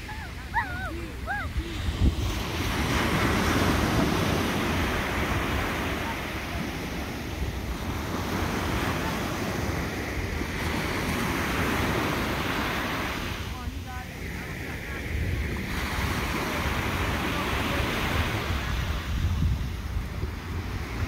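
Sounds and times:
ocean surf breaking: 0:00.0 - 0:21.0
wind buffeting microphone: 0:00.0 - 0:21.0.

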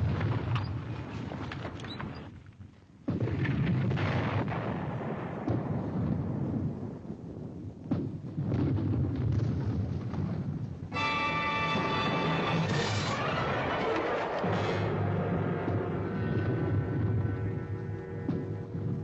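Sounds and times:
explosions: 0:03.1 - 0:19.0
dramatic music with held chord: 0:10.9 - 0:13.2, 0:14.4 - 0:18.8.

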